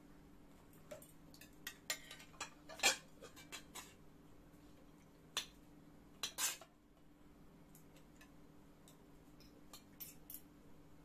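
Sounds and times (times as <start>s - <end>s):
cutlery clinking on plates: 0.9s - 4.0s, 6.2s - 6.7s, 9.4s - 10.5s.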